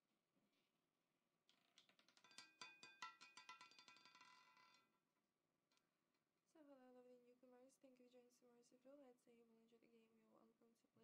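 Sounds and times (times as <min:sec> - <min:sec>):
roulette ball clattering: 0:01.5 - 0:04.9.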